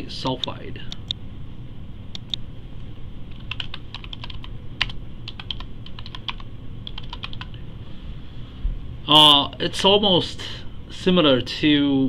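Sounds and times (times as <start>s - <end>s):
computer keyboard typing: 3.3s - 7.6s.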